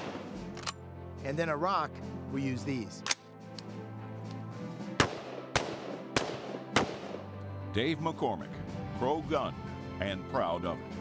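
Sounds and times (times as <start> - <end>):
rifle shots: 0.0 - 0.5, 5.0 - 7.3
background music: 0.0 - 11.0.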